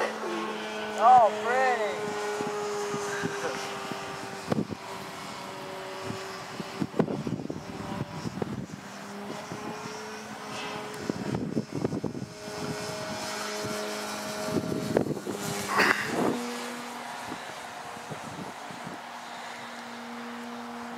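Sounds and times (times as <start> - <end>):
model airplane motor and propeller: 0.0 - 20.9
wind buffeting microphone: 0.7 - 20.9.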